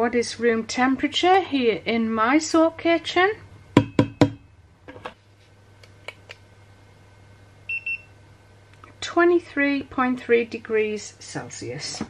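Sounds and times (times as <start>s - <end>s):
thermometer beeping: 7.7s - 8.2s.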